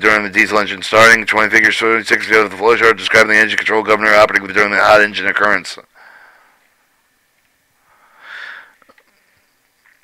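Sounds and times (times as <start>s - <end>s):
breath into microphone: 6.0s - 6.6s, 7.8s - 8.9s.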